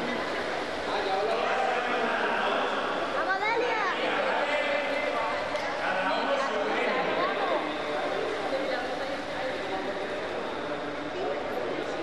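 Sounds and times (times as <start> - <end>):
children chattering and calling out: 3.1 - 4.8.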